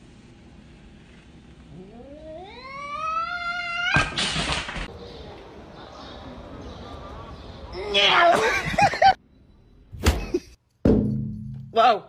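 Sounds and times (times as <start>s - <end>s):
cat yowling: 1.7s - 4.2s.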